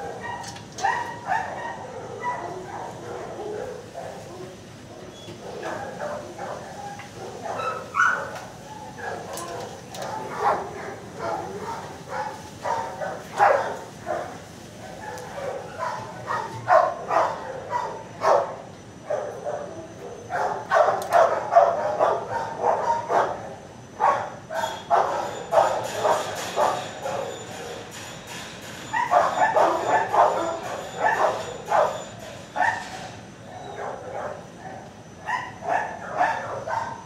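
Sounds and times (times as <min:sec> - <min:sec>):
dogs barking: 0:00.0 - 0:37.0.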